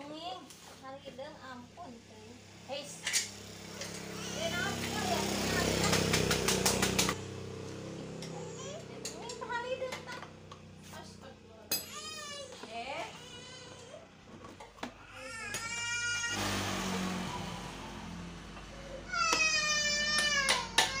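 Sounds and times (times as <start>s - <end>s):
young children babbling: 8.3s - 9.0s, 18.8s - 21.0s.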